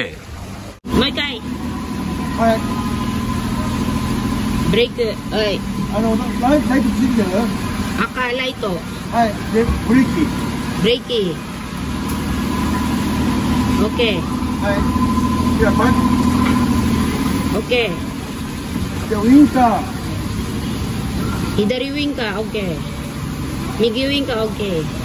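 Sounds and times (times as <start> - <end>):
van engine idling: 0.0 - 25.0
voices: 0.0 - 25.0.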